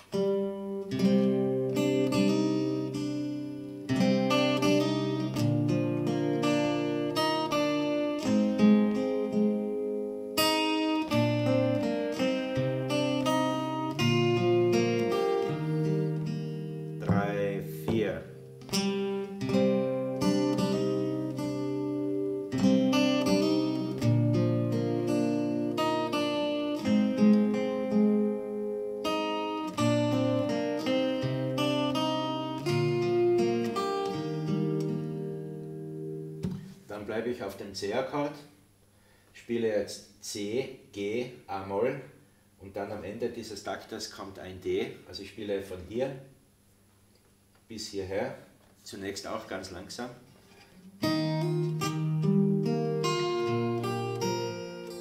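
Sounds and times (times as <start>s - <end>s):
fingerstyle acoustic guitar: 0.0s - 37.0s, 50.2s - 55.0s.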